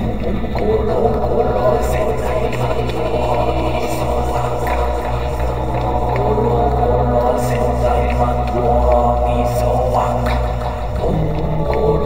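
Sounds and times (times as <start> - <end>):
faint percussive ticks: 0.0 - 12.0
layered voices: 0.0 - 12.0
low droning voice: 0.0 - 12.0.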